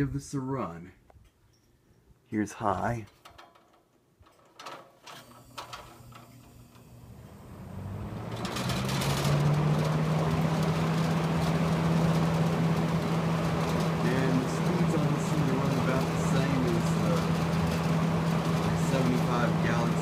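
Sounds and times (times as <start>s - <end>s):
box fan humming and rushing air: 5.3s - 20.0s.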